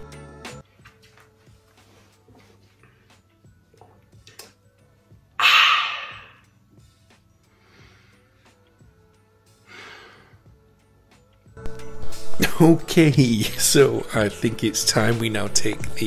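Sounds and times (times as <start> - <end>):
faint background music: 0.0 - 16.0
soft breath: 7.4 - 8.7.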